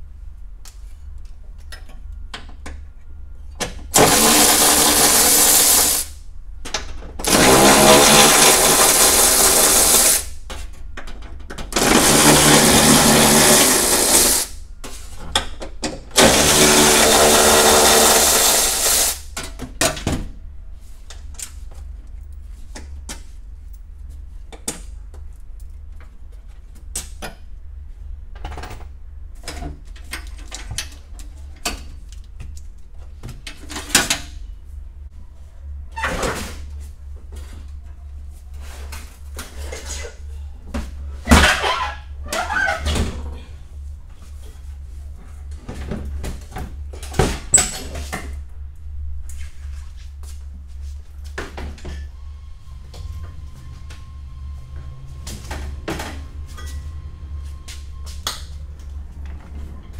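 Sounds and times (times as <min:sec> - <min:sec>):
cordless power tool spinning bolts: 0:04.0 - 0:06.0, 0:07.3 - 0:10.2, 0:11.8 - 0:14.5, 0:16.2 - 0:19.2.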